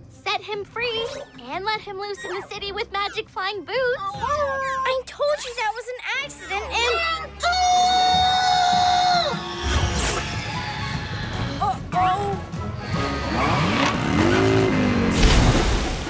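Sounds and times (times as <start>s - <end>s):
cartoon background score music: 0.0s - 15.4s.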